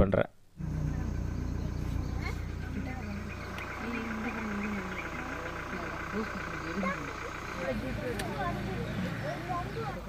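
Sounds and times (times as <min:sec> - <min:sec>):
vehicle engine humming: 0:00.5 - 0:10.0
insects chirring: 0:00.6 - 0:09.5
faint voices talking: 0:00.6 - 0:10.0.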